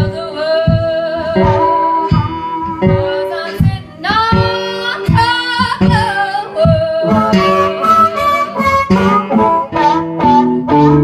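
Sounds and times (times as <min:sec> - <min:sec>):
guitar: 0:00.0 - 0:11.0
low beat: 0:00.0 - 0:11.0
person singing with vibrato: 0:00.0 - 0:11.0.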